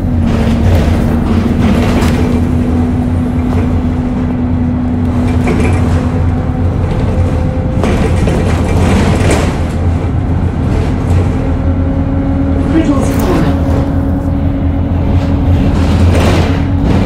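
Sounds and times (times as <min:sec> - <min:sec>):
bus engine droning: 0:00.0 - 0:17.0
steady engine whine: 0:00.0 - 0:17.0.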